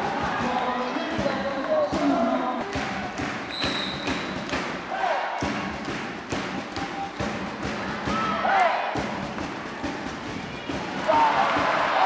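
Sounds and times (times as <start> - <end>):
crowd noise: 0.0 - 12.0
volleyball thumps and knocks: 0.1 - 8.4
referee whistle: 3.5 - 4.4
players shouting: 4.9 - 5.4, 7.9 - 9.0, 10.7 - 12.0.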